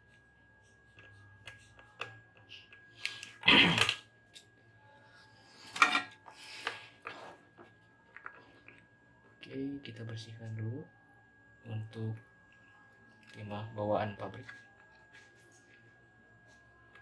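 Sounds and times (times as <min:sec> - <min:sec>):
faint high-pitched tone: 0:00.0 - 0:17.0.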